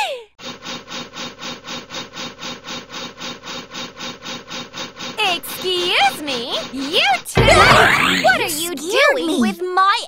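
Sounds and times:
fire-drill stick rubbing wood: 0.4 - 8.9.

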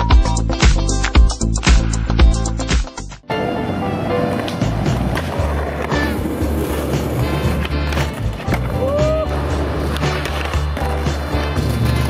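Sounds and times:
music with bass beat: 0.0 - 3.2
skateboard wheels rolling: 3.3 - 12.0
skateboard clacks: 4.3 - 12.0.

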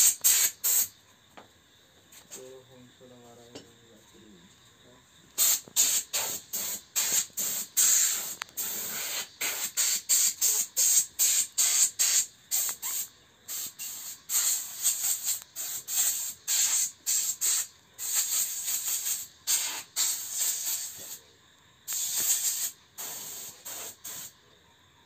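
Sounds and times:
paint spray gun hissing: 0.0 - 1.0, 5.4 - 21.2, 21.9 - 24.4.

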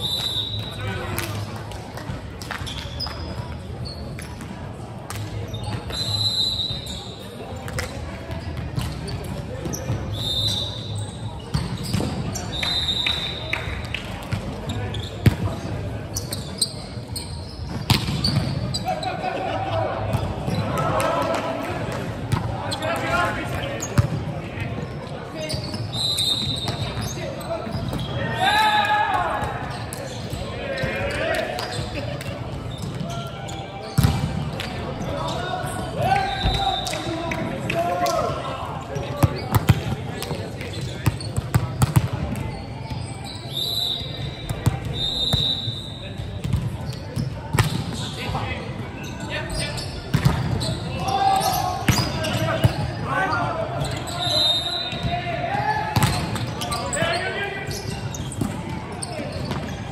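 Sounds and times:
shoes squeaking on floor: 2.6 - 4.5, 5.4 - 13.4, 14.6 - 19.2, 24.8 - 28.4, 29.5 - 37.3, 38.0 - 55.2, 55.9 - 59.9
volleyball hits: 17.7 - 18.6.

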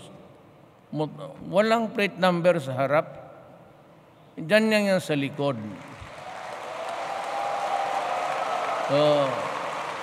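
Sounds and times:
audience applauding: 5.8 - 10.0.

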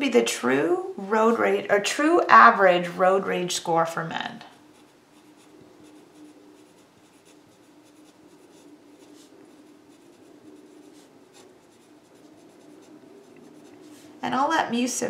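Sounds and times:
faint low hum: 0.0 - 15.0
pen scratching on paper: 4.7 - 14.2.

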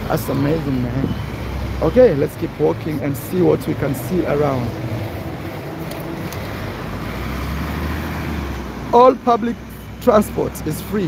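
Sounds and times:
vehicles passing on street: 0.0 - 11.0.

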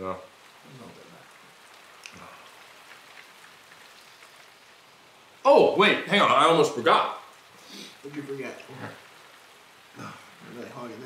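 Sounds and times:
faint steady rain: 0.0 - 11.0
light ticks: 2.0 - 2.2.

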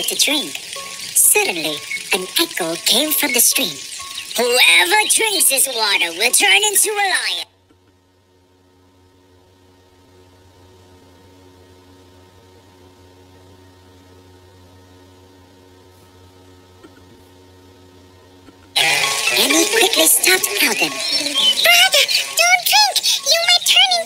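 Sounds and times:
low sustained music chords: 0.0 - 6.4, 11.6 - 24.0.

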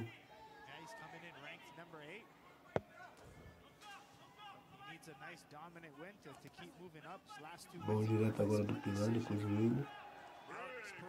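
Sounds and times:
distant broadcast voices: 4.7 - 9.9.

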